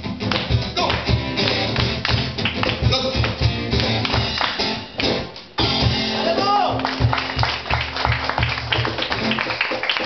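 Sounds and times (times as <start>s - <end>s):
acoustic guitar: 0.0s - 10.0s
drum kit beat: 0.0s - 10.0s.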